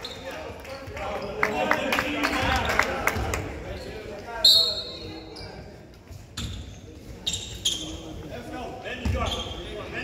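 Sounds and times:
sneaker squeak on hardwood: 6.4s - 8.2s, 9.0s - 9.7s.

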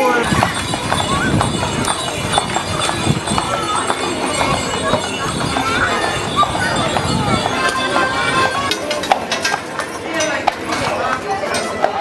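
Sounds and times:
horse hooves clip-clopping on pavement: 0.0s - 12.0s
people chattering: 0.0s - 12.0s.

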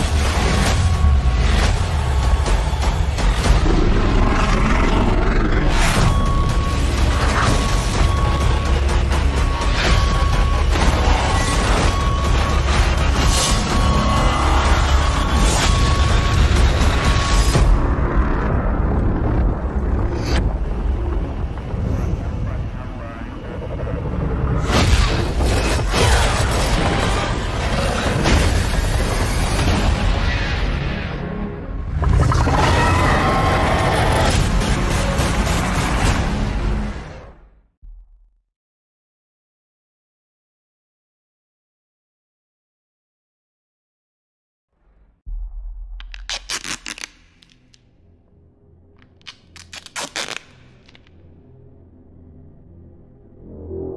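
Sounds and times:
dramatic cinematic music: 0.0s - 38.2s
tape ripping off roll: 46.0s - 47.8s, 49.0s - 51.1s
low steady drone: 51.3s - 53.9s.

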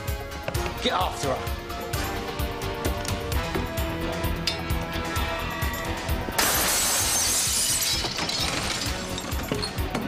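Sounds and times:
background music: 0.0s - 10.0s
glass window smashing: 6.4s - 9.9s.

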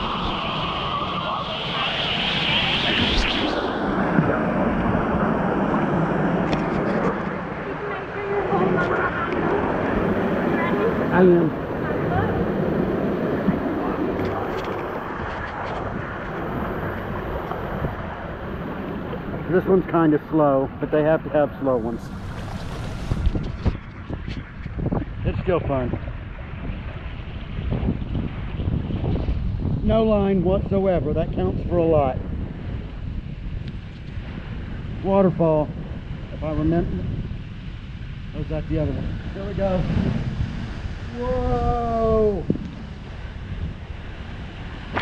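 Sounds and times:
water rushing: 0.0s - 24.2s, 38.3s - 45.0s
wind buffeting microphone: 0.0s - 45.0s.

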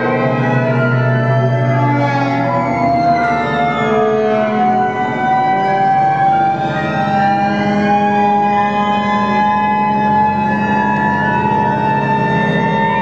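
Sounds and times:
low steady drone: 0.0s - 13.0s
sustained tones gliding upward: 0.0s - 13.0s.

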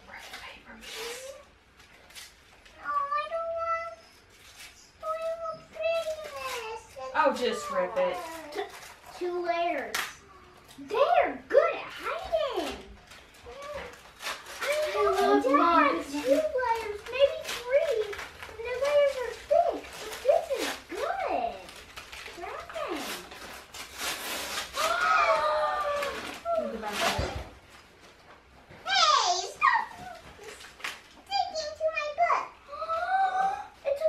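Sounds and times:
wrapping paper tearing: 0.4s - 10.8s, 11.6s - 28.2s, 28.9s - 32.1s
children chattering and exclaiming: 5.0s - 21.8s, 24.7s - 27.4s, 28.8s - 30.6s, 31.2s - 34.0s.

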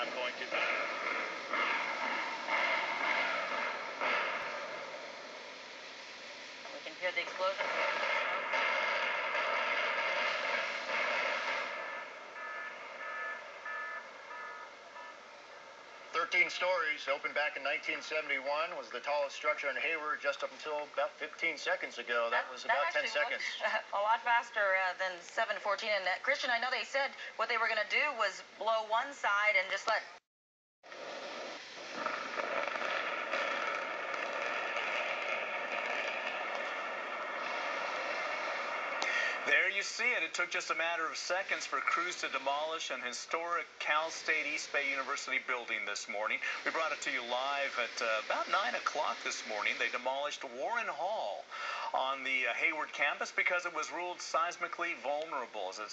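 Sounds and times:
building collapse rush: 0.0s - 15.1s, 30.9s - 52.1s
short beeps: 12.4s - 15.2s.

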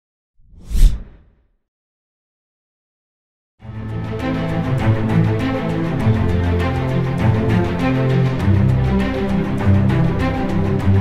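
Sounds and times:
whoosh: 0.4s - 1.4s.

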